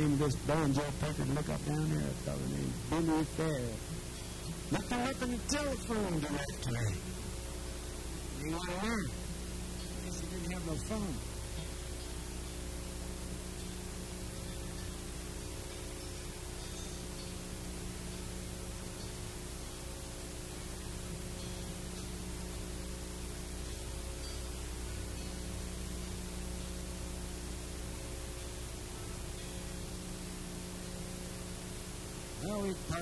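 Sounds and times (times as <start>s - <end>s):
low mains hum: 0.0s - 33.0s
steady hiss: 0.0s - 33.0s.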